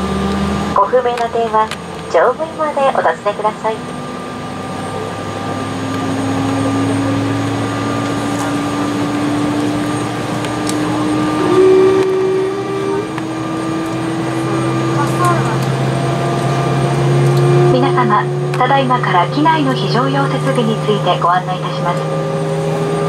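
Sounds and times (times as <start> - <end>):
jet engines whining and humming: 0.0 - 23.0
short higher-pitched hum: 10.8 - 18.5.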